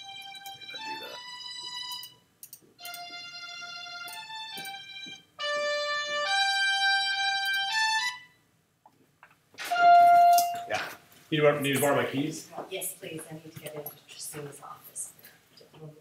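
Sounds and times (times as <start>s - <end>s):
synthesizer brass melody: 5.4s - 8.4s, 9.6s - 10.7s.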